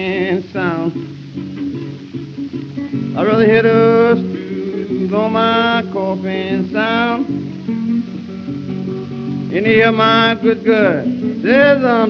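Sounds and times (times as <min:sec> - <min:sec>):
person singing: 0:00.0 - 0:02.0, 0:02.7 - 0:07.5, 0:09.5 - 0:12.0
acoustic blues guitar fill: 0:00.0 - 0:12.0.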